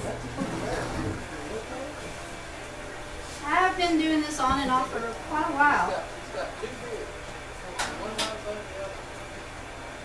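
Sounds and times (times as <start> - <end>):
potter's wheel humming: 0.0 - 10.0.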